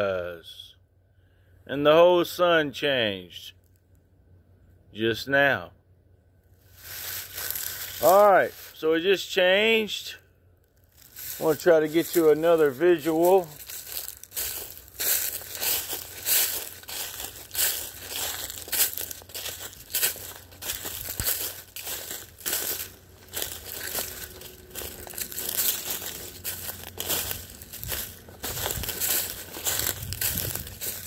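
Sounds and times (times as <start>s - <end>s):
footsteps crunching through dry leaves: 6.6s - 10.0s, 10.7s - 31.0s.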